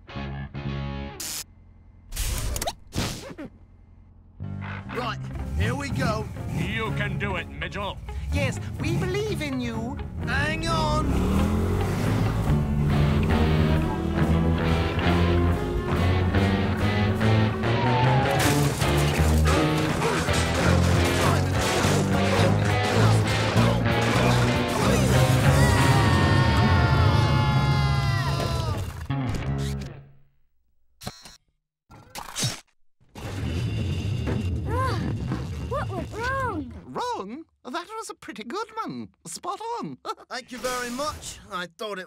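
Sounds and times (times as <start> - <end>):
dramatic cartoon music: 4.4 - 29.9
crash: 18.2 - 25.9.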